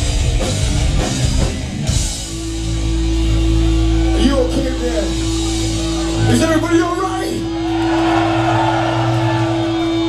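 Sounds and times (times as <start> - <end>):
guitar amplifier drone: 0.0 - 6.3
crowd noise: 0.0 - 10.0.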